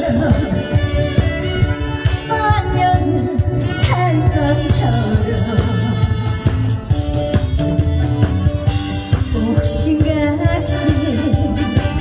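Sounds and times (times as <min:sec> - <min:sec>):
woman singing into microphone: 0:00.0 - 0:06.9, 0:09.3 - 0:12.0
instrumental music with steady beat: 0:00.0 - 0:12.0.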